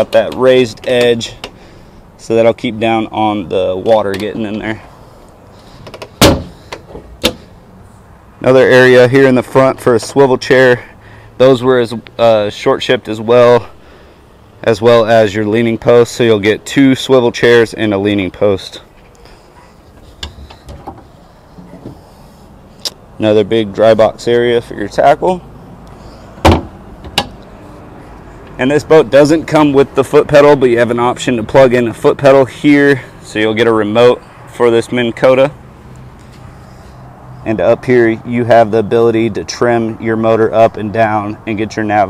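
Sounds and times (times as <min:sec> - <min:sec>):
hatch lid thud: 0:05.9 - 0:06.6, 0:26.4 - 0:27.4.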